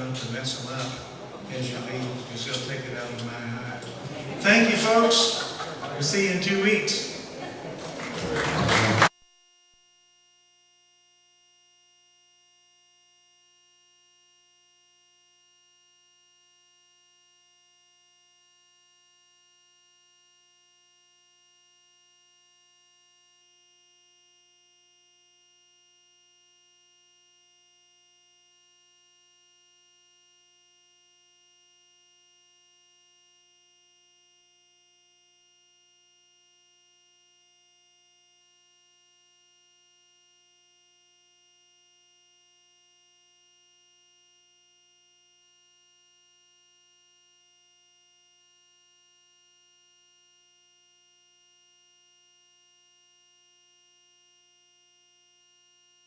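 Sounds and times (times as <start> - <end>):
faint electronic hum: 0.0 - 56.0.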